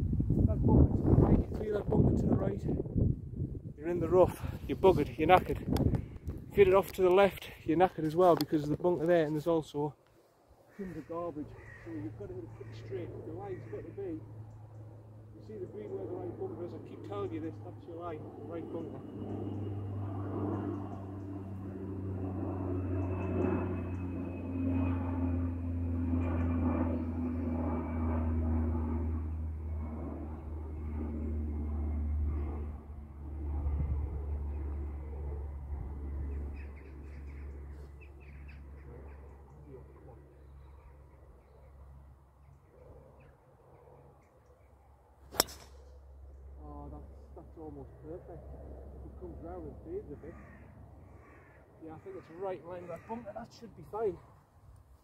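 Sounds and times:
crows cawing: 0:10.6 - 0:14.6, 0:49.5 - 0:53.7
low engine drone: 0:10.7 - 0:53.8
golf driver striking ball: 0:45.3 - 0:45.8.

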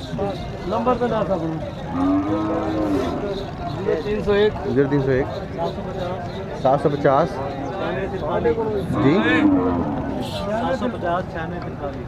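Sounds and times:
cattle mooing: 0:01.9 - 0:03.4, 0:08.8 - 0:10.4.

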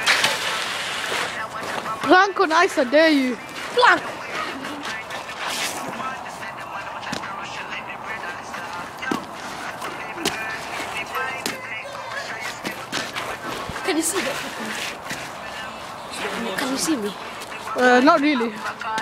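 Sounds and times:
faint voices: 0:00.0 - 0:19.0.

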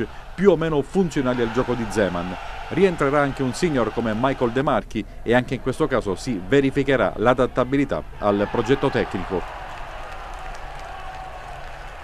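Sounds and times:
stadium crowd cheering: 0:00.0 - 0:04.8, 0:08.2 - 0:12.0.

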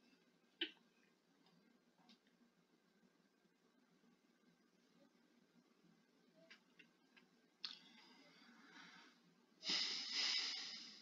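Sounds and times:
person exhaling: 0:08.0 - 0:11.0.

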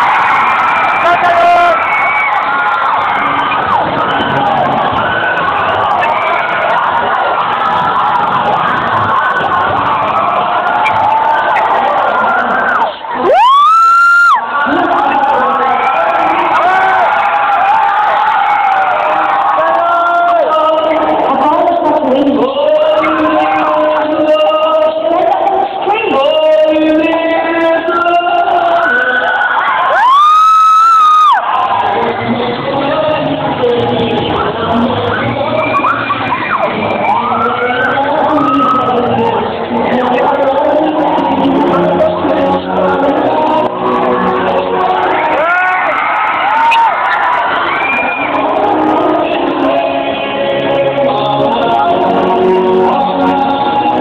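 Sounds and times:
crowd cheering: 0:00.0 - 0:54.0.

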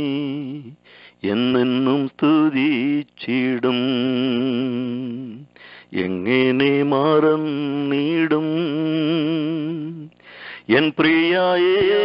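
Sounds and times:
man singing over telephone line: 0:10.7 - 0:12.0.

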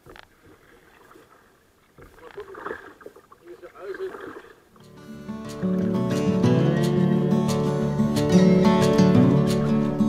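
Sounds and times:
kayak paddling in water: 0:00.0 - 0:04.8.

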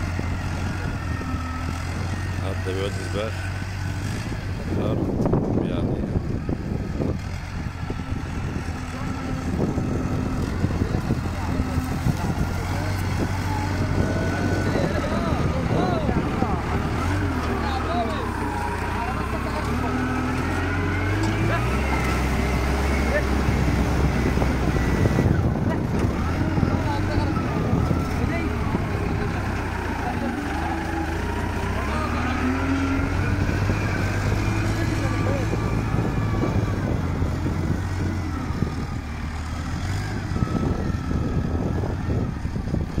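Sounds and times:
diesel engine under load: 0:00.0 - 0:43.0.

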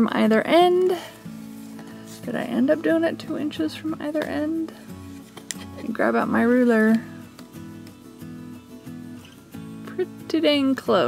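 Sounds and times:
plucked acoustic guitar music: 0:00.0 - 0:11.0.

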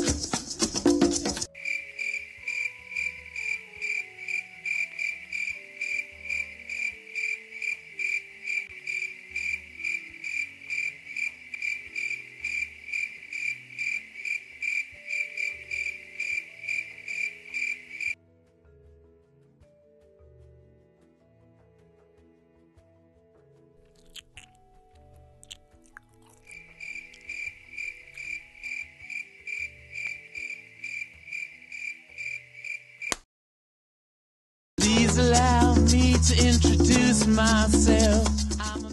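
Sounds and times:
cricket chirping: 0:01.6 - 0:18.2, 0:26.2 - 0:33.2.

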